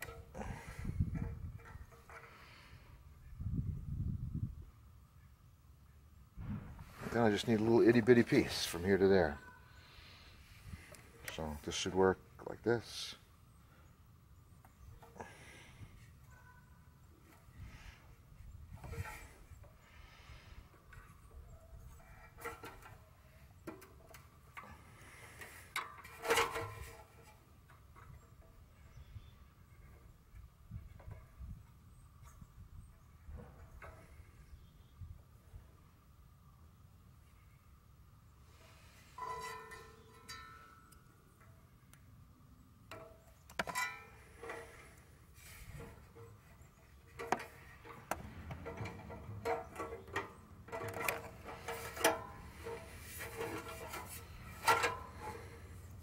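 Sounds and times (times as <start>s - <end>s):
fuel line clicks and knocks: 47.1s - 55.6s.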